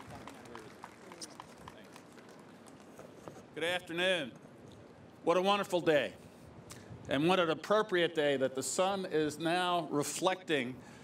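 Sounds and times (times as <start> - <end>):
man speaking into a microphone: 7.1 - 10.9.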